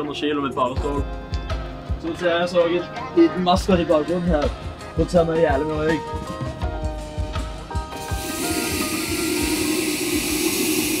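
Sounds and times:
fog machine hissing: 0:08.0 - 0:11.0.

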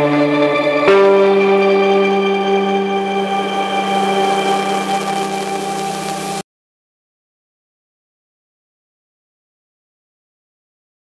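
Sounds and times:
electric bass guitar note ringing: 0:00.0 - 0:06.4.

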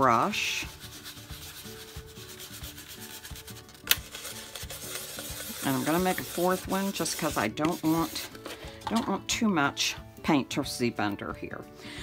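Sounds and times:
brush scrubbing paint: 0:00.0 - 0:08.7.

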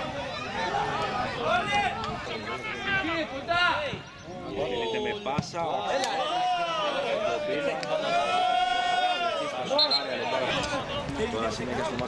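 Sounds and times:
men's voices calling: 0:00.0 - 0:12.0
long drawn-out shout: 0:06.0 - 0:09.8.

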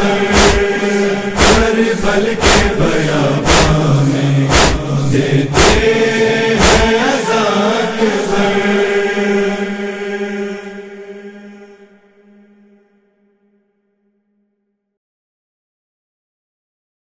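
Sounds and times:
voices chanting: 0:00.0 - 0:12.1
sharp beats: 0:00.1 - 0:07.6.

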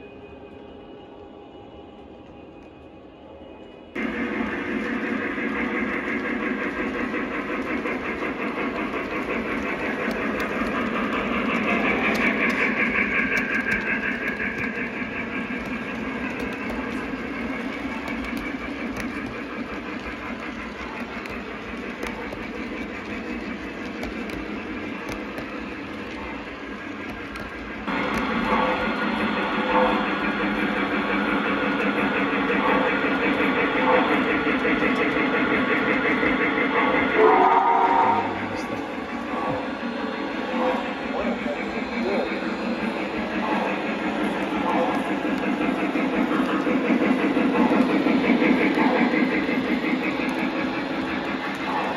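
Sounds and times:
model trains rolling on track: 0:00.0 - 0:51.9
train passing close by: 0:00.0 - 0:51.9.

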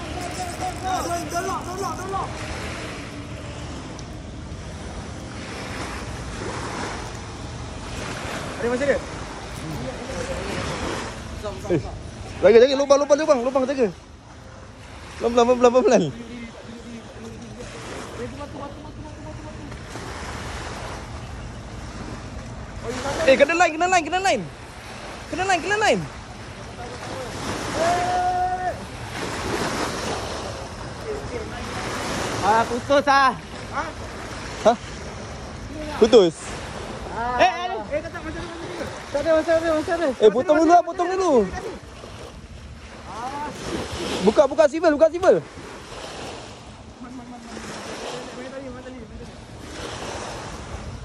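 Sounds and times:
small waves washing onto shore: 0:00.0 - 0:51.0
person calling out: 0:00.1 - 0:02.4
wind rumbling on microphone: 0:49.2 - 0:51.0.

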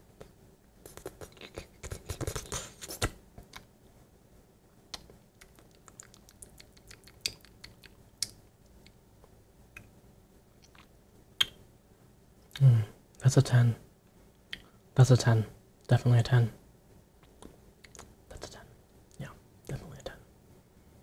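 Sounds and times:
wet mouth smacks and lip clicks: 0:00.9 - 0:02.5, 0:04.9 - 0:09.0, 0:10.6 - 0:11.6, 0:17.2 - 0:18.1.

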